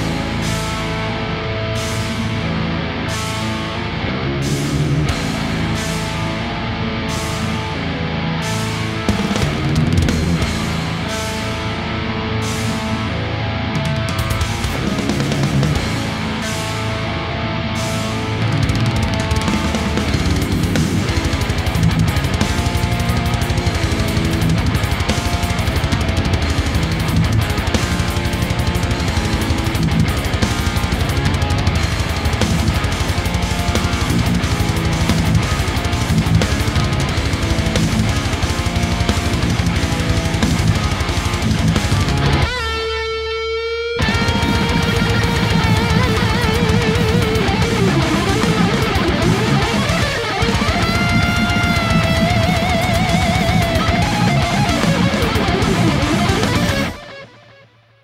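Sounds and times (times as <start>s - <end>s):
electric guitar heavy metal riff: 0.0s - 58.0s.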